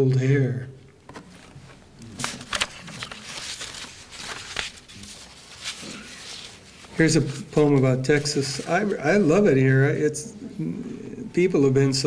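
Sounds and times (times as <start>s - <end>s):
paper crackles: 1.1s - 9.2s
paper rustling and crinkling: 1.1s - 9.3s.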